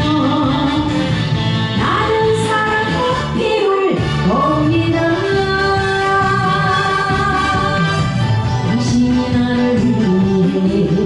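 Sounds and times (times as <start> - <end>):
musical accompaniment: 0.0 - 11.0
woman singing: 0.0 - 11.0.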